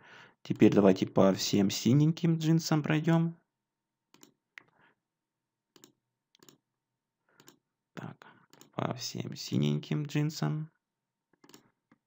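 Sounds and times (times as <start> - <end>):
computer mouse clicks: 4.1 - 4.7, 5.8 - 6.6, 7.4 - 7.6, 11.4 - 11.7.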